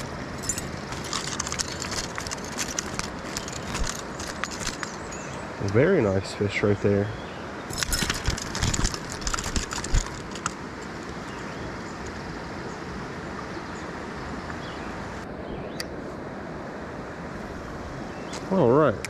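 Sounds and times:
clicks and rustles of net: 0:00.0 - 0:05.2, 0:07.7 - 0:11.2
stream rushing hiss: 0:00.0 - 0:19.0.

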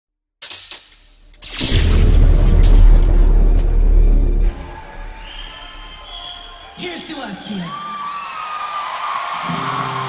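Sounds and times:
sudden hit: 0:01.4 - 0:06.0
deep rumble: 0:01.5 - 0:06.0.

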